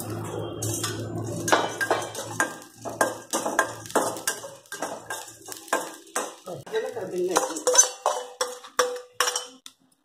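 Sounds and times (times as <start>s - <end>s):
metal spatula scraping a steel pan: 0.0s - 6.3s, 7.2s - 9.6s.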